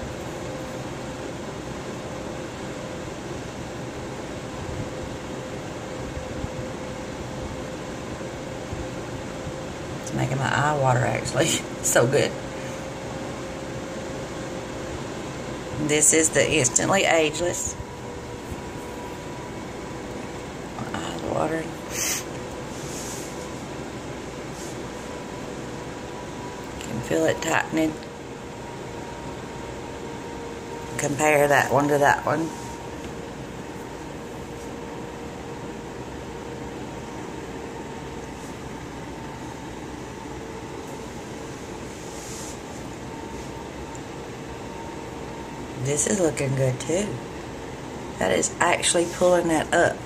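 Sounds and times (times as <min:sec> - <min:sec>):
electric fan running: 0:00.0 - 0:50.0.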